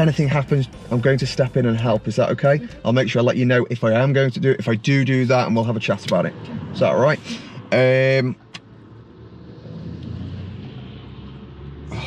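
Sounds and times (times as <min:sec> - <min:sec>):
car engine idling: 0:00.0 - 0:09.3.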